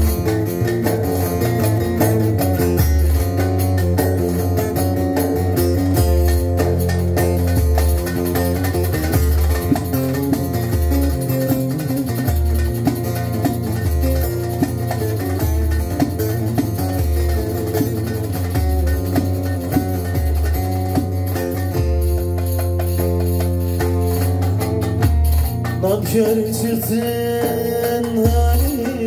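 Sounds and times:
low bass line: 0.0s - 27.4s
percussion hits: 0.0s - 29.0s
plucked lute melody: 0.0s - 29.0s.

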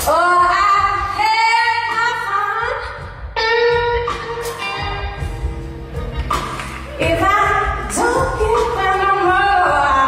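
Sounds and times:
woman singing blues: 7.0s - 10.0s.

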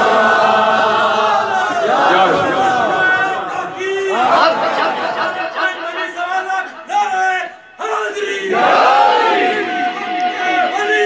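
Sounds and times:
man chanting: 1.4s - 8.5s.

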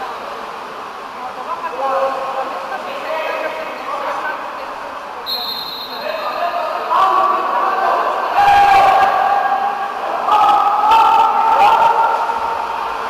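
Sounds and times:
shouting voices in pool hall: 0.0s - 13.0s
short high whistle blast: 5.3s - 6.2s.

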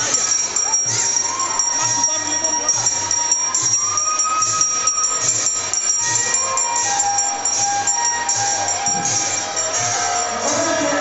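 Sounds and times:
hand bell ringing: 0.0s - 11.0s
hand cymbals: 0.0s - 11.0s
held melodic notes: 0.0s - 11.0s.

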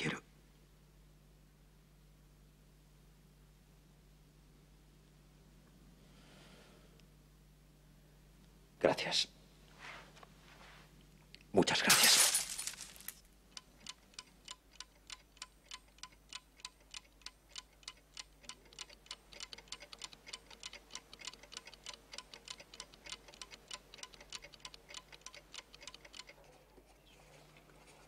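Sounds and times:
alarm clocks ticking: 13.5s - 26.4s.

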